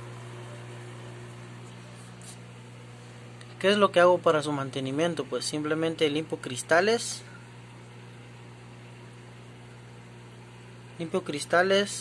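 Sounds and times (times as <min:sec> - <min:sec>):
pump humming: 0:00.0 - 0:12.0.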